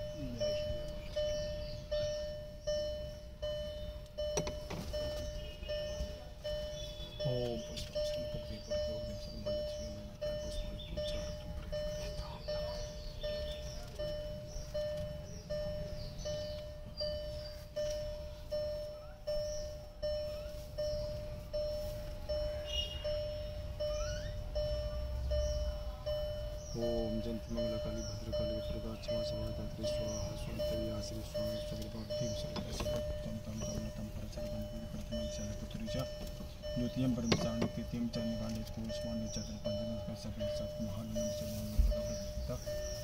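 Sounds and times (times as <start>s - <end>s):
car warning chime beeping: 0.0s - 43.0s.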